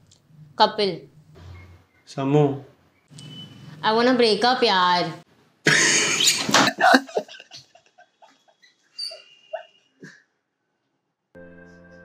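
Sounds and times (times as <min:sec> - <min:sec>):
man giggling: 0:05.7 - 0:08.6.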